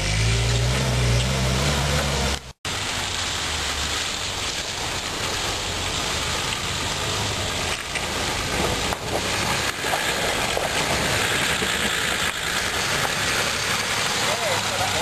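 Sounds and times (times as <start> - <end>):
engine revving: 0.0 - 2.6
engine crawling through mud: 0.0 - 15.0
steady hiss: 2.7 - 15.0.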